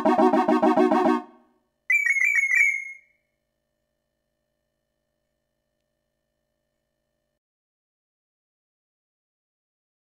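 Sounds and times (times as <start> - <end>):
rapid high electronic beeps: 1.9 - 3.0.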